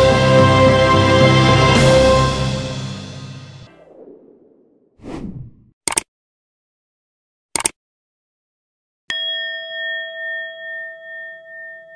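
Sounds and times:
bell ding chime: 0:09.1 - 0:11.9.

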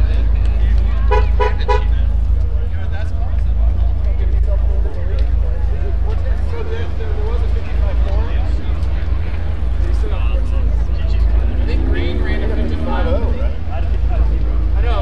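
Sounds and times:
people chattering: 0:00.0 - 0:15.0.

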